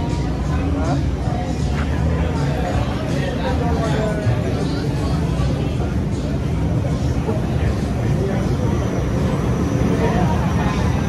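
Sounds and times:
voices of people nearby: 0.0 - 11.0.

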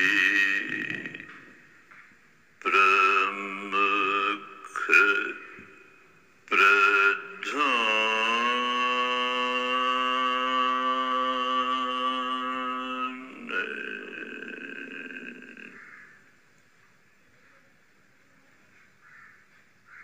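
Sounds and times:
man chanting a held note: 0.0 - 1.3, 2.6 - 5.9, 6.5 - 15.8.

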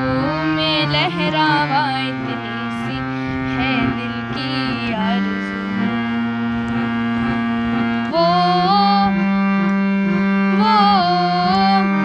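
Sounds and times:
harmonium drone chord: 0.0 - 12.0.

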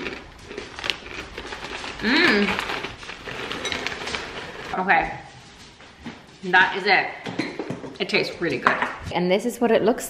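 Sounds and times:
granola crunching while chewed: 0.0 - 4.7.

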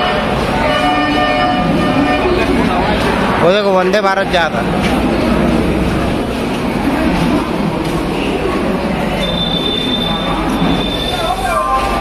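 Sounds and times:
station crowd noise: 0.0 - 12.0
train wheels squealing on rails: 9.0 - 12.0.

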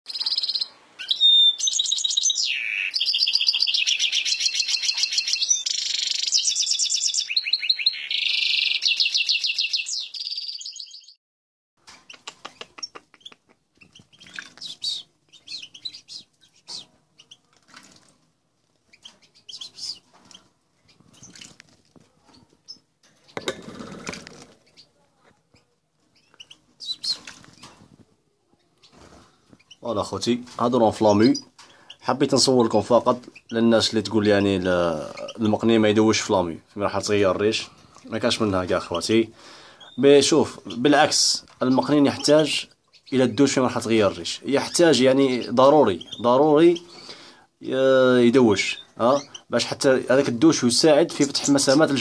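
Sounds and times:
faint bird chirps: 0.1 - 11.2, 11.8 - 17.6, 18.9 - 23.5, 24.6 - 29.9, 34.3 - 35.5, 39.6 - 47.1, 48.5 - 49.6
songbird twittering trills: 0.1 - 11.2, 11.9 - 17.4, 18.9 - 21.5, 26.2 - 27.8
bird splashing and wing-fluttering: 17.5 - 18.3, 21.1 - 21.9, 23.4 - 24.7.

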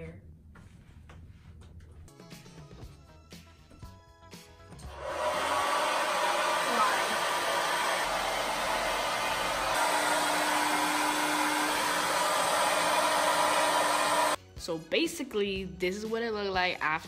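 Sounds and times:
hair dryer blowing air: 4.9 - 14.4.

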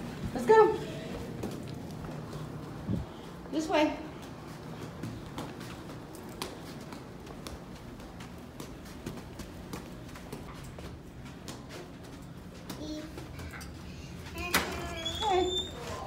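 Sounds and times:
footsteps on carpet: 0.0 - 13.4.

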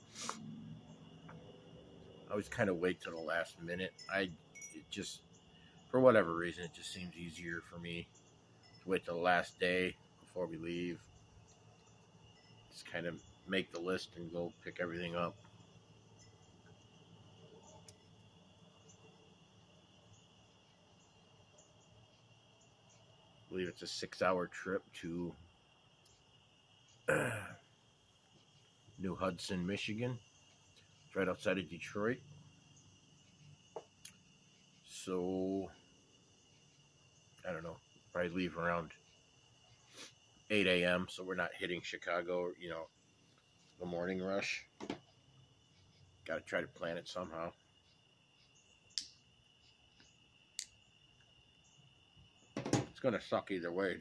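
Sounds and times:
crickets chirping: 0.0 - 54.0
man clearing his throat: 27.1 - 27.6
sharp clicks: 48.9 - 49.2.

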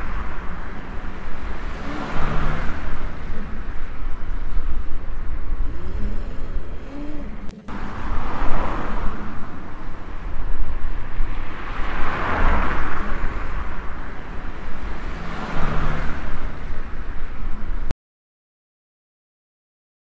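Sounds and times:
low traffic rumble: 0.0 - 17.9
passing vehicles: 0.0 - 17.9.

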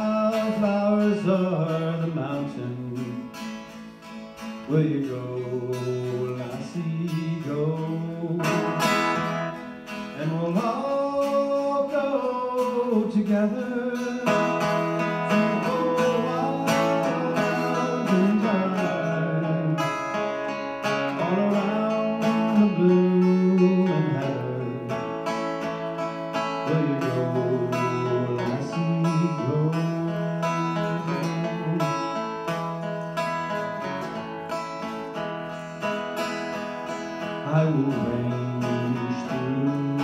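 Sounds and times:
acoustic guitar folk melody: 0.0 - 40.0.

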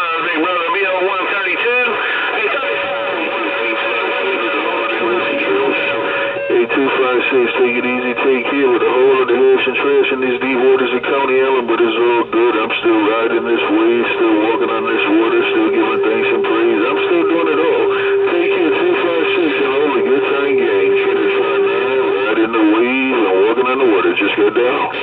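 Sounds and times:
warbling radio tones: 0.0 - 25.0
steady whistle: 2.5 - 9.4, 13.5 - 24.2.

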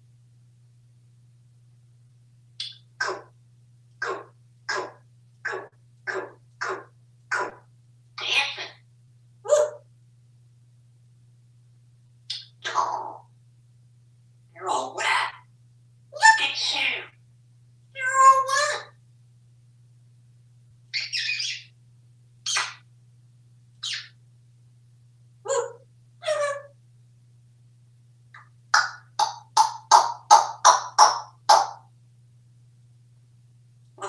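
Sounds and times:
parrot calls and mimicry: 2.6 - 3.4, 4.0 - 8.8, 9.4 - 9.9, 12.3 - 13.4, 14.6 - 15.5, 16.1 - 17.2, 17.9 - 19.0, 20.9 - 21.8, 22.4 - 22.9, 23.8 - 24.2, 25.4 - 26.8, 28.3 - 31.9.

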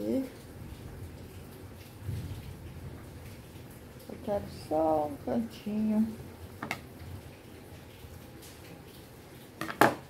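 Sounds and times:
scissors knocking on table: 9.6 - 10.0.

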